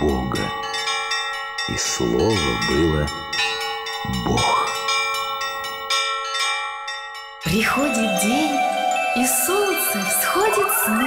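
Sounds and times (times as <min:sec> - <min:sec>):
church bells pealing: 0:00.0 - 0:11.0.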